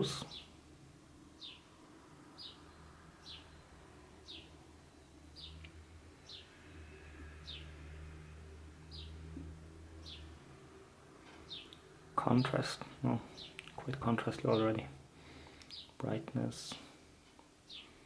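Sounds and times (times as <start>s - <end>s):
bird chirping: 0.0s - 0.6s, 1.4s - 7.8s, 8.8s - 10.4s, 11.3s - 14.9s, 15.5s - 16.1s
low steady hum: 0.0s - 18.0s.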